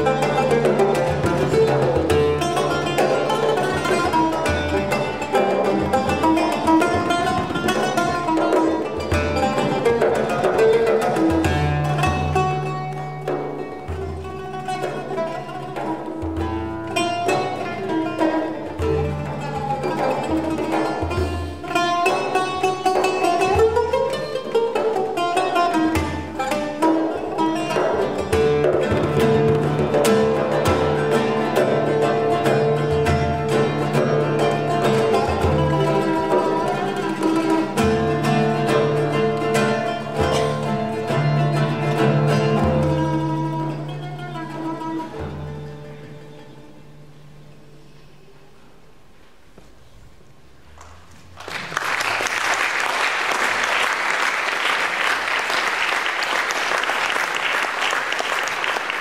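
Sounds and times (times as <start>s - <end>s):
oud playing plucked melody: 0.0s - 50.0s.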